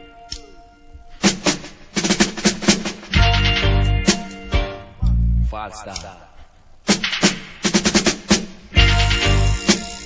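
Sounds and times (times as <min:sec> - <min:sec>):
drum kit fill: 0:01.0 - 0:05.5, 0:06.9 - 0:10.0.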